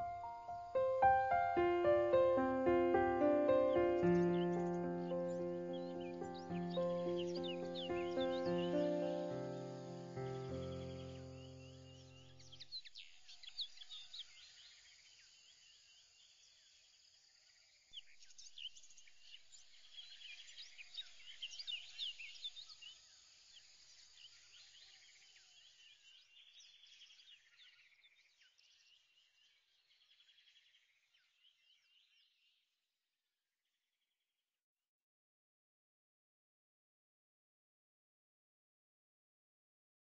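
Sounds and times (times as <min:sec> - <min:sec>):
music chord: 0:00.0 - 0:11.9
bird chirps: 0:00.0 - 0:14.6.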